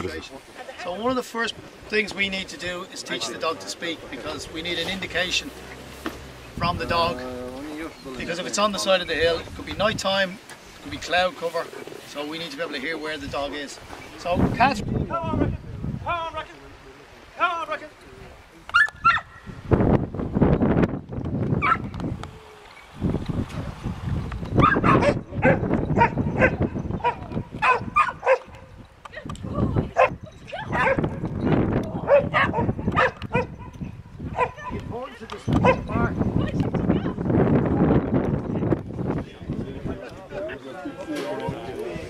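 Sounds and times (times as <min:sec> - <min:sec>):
dog barking sharply: 0:18.7 - 0:19.3, 0:24.6 - 0:28.5, 0:32.1 - 0:33.7.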